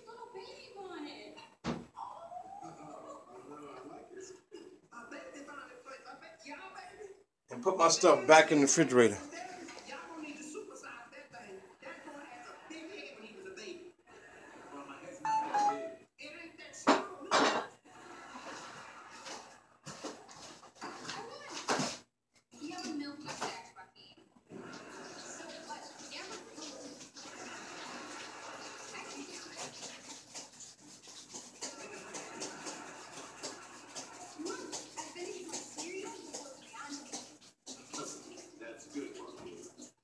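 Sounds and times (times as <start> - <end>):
dishes clattering: 16.9 - 17.8.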